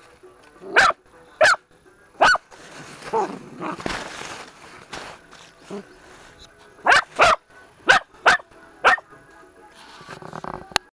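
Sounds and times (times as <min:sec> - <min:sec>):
puppy barking: 0:00.7 - 0:01.6, 0:02.2 - 0:02.4, 0:03.1 - 0:03.8, 0:06.8 - 0:09.1.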